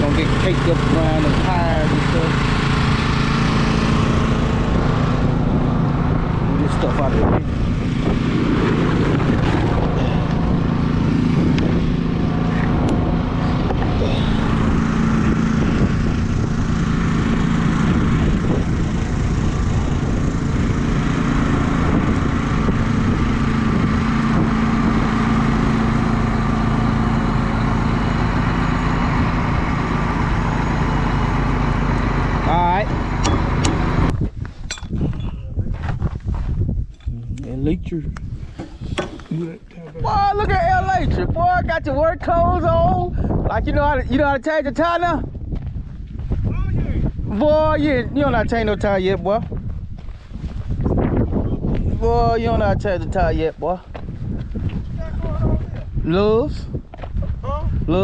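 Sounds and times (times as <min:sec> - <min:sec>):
engine running: 0:00.0 - 0:58.0.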